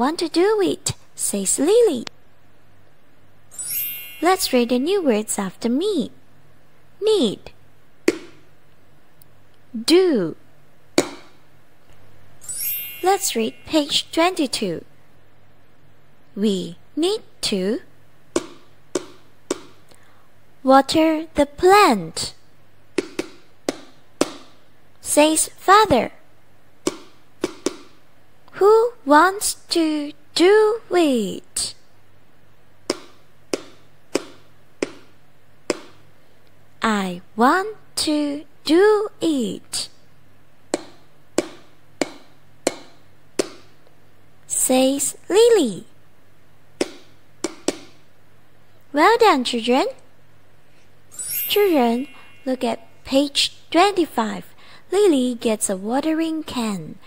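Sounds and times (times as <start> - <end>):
sharp taps: 18.3 - 19.8, 26.8 - 28.0, 32.9 - 35.1, 35.7 - 36.0, 40.7 - 43.7.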